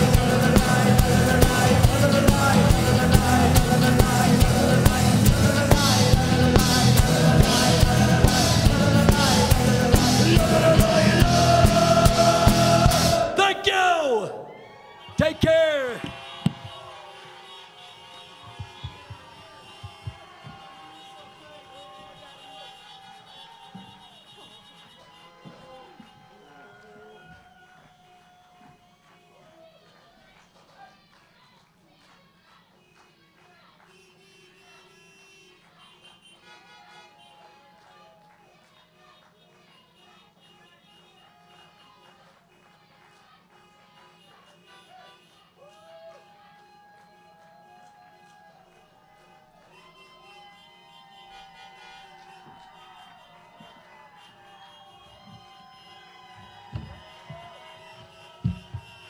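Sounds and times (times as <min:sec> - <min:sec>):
car horns honking: 0:00.0 - 0:14.4, 0:15.0 - 0:27.3, 0:33.9 - 0:37.8, 0:39.4 - 0:42.3, 0:43.4 - 0:45.8, 0:49.8 - 0:59.0.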